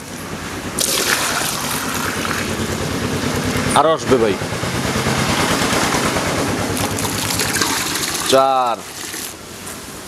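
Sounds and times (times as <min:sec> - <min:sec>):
milk pouring into plastic jug: 0:00.8 - 0:02.7, 0:06.8 - 0:09.4.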